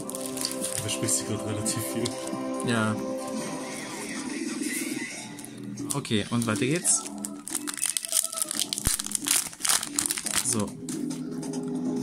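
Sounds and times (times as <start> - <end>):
foil wrapper crinkling: 0.0 - 1.2, 5.3 - 10.7.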